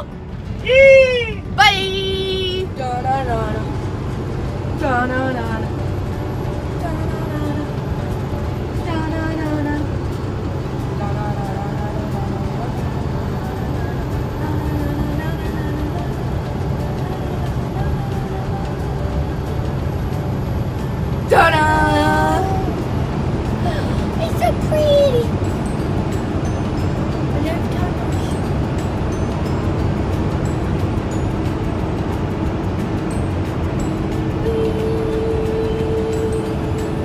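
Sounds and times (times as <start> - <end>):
faint drawn-out vocal sounds: 0.0 - 25.7
truck engine and road noise: 0.0 - 37.0.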